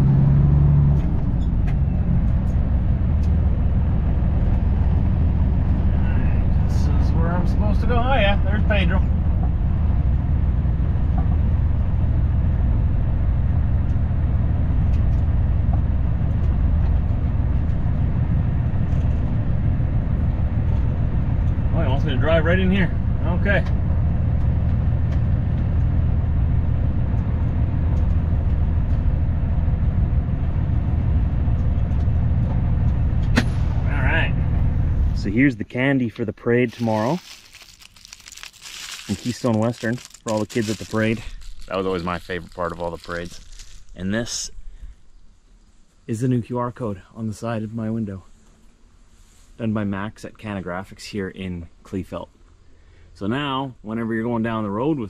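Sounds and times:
vehicle engine droning: 0.0 - 55.0
wrapped candies crinkling: 36.6 - 44.4.

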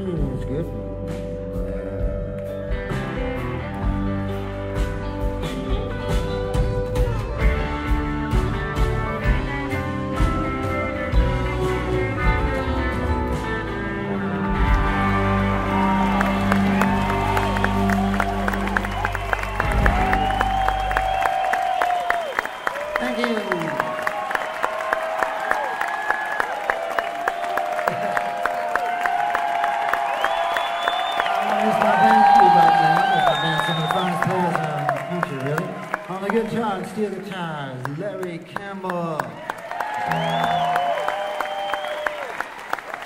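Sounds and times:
live band playing slow song: 0.0 - 25.9, 39.7 - 42.9
audience applauding: 13.3 - 43.0
crowd cheering and whistling: 14.2 - 36.8, 39.4 - 43.0.

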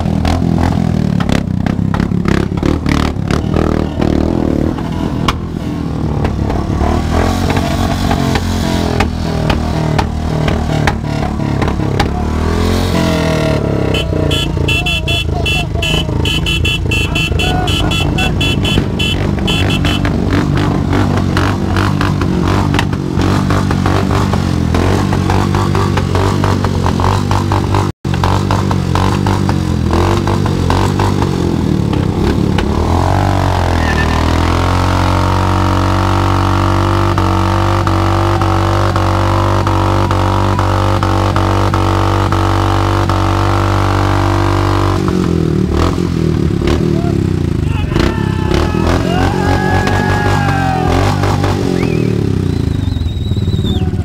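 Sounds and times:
motorcycle engines revving: 0.0 - 54.0.

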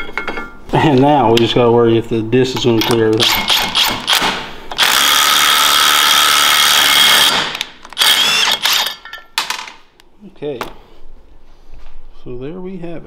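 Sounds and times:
impact driver spinning lug nut: 2.8 - 9.0.

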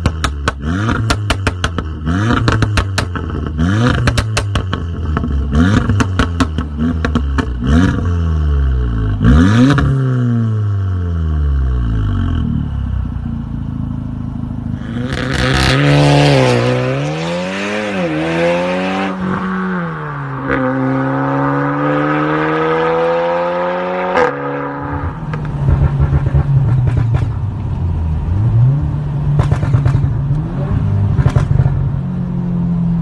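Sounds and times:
exhaust pops: 0.0 - 8.0, 25.0 - 27.6, 29.3 - 30.4, 31.1 - 31.9
exhaust crack at upshifts: 0.0 - 10.8, 21.5 - 32.0
car engine accelerating hard: 14.7 - 32.3.

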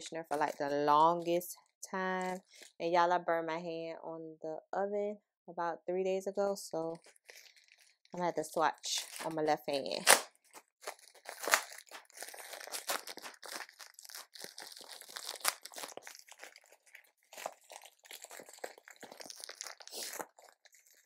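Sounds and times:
plastic packaging crinkling: 0.0 - 2.8, 7.0 - 21.0.

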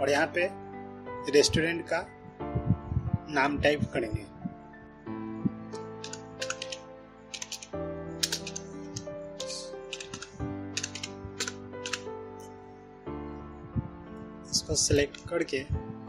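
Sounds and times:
soft background music: 0.0 - 16.0
keyboard keystrokes clicking: 5.8 - 12.1.

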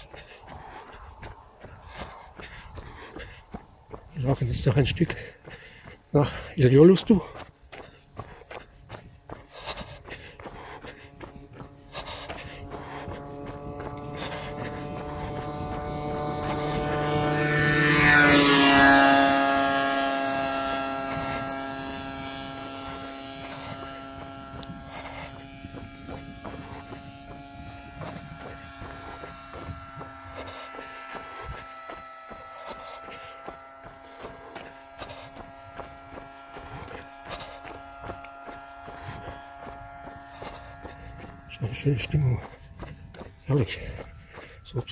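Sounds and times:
vehicle engine passing by: 10.4 - 42.8.

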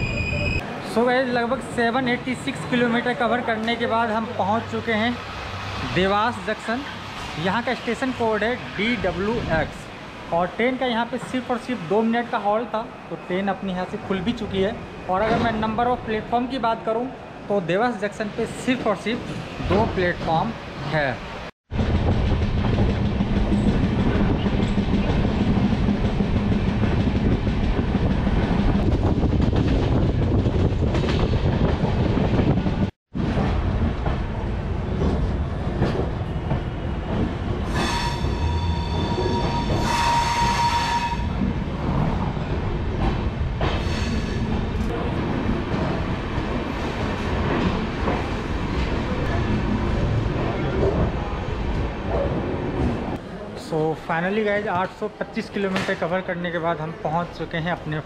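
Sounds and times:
train wheels rumbling on rails: 21.7 - 53.2.

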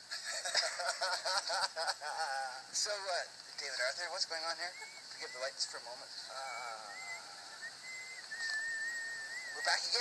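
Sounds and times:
thin high whistling tone: 6.4 - 10.0.

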